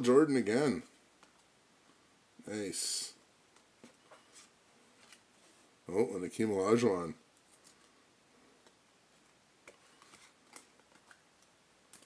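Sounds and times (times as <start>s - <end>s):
cards being shuffled: 9.6s - 11.3s.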